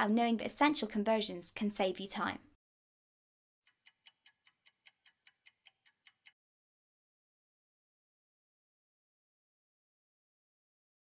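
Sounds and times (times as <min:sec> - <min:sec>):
faint clock ticking: 0:03.7 - 0:06.4.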